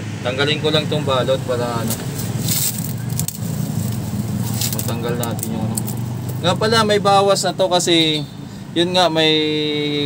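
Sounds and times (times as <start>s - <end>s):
steady low hum: 0.0s - 8.8s
plastic wrap tearing and crackling: 1.9s - 6.3s.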